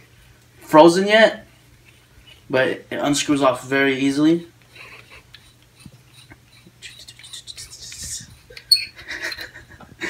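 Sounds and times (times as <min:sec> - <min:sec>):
low steady hum: 0:00.0 - 0:10.0
threaded parts scraping: 0:01.5 - 0:02.6, 0:04.7 - 0:09.5
squeaky click: 0:08.5 - 0:09.0.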